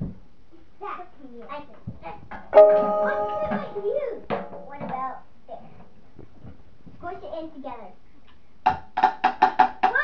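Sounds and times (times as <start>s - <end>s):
pitched instrument struck: 2.6s - 4.2s.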